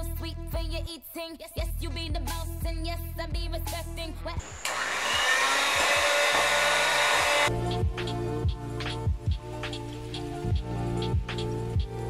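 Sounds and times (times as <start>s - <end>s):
electric hand mixer whipping: 4.4s - 7.5s.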